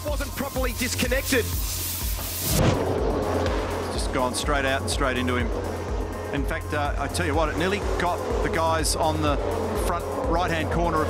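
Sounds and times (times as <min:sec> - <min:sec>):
broad hiss: 0:00.0 - 0:02.7
background music with beat: 0:00.0 - 0:11.0
race car engines: 0:02.5 - 0:11.0.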